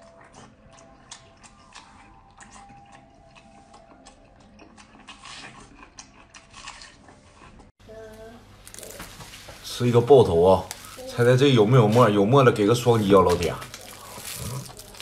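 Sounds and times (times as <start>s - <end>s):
wet chewing clicks: 0.0s - 7.7s, 13.3s - 15.0s.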